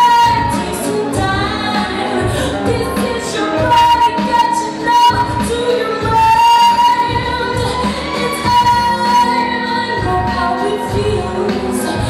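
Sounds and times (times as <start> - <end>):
music with steady beat: 0.0 - 12.0
woman singing into microphone: 0.0 - 12.0.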